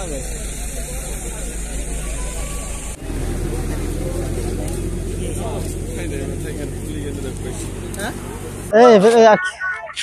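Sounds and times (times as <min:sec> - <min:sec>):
vehicle engine idling: 0:00.0 - 0:09.5
people talking: 0:00.0 - 0:10.0.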